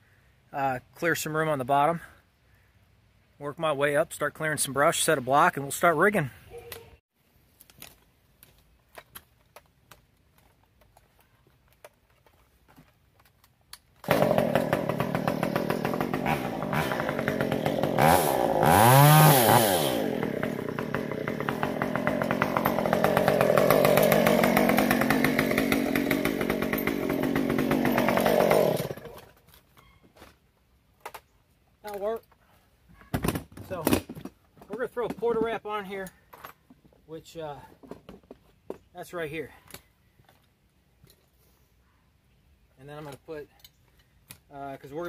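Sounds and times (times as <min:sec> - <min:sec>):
chainsaw running: 0:14.0 - 0:29.4.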